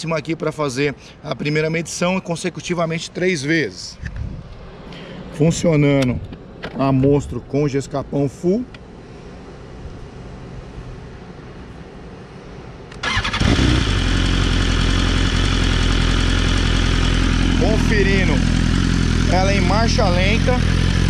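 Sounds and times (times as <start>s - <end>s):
motorcycle engine starting and idling: 12.9s - 21.0s.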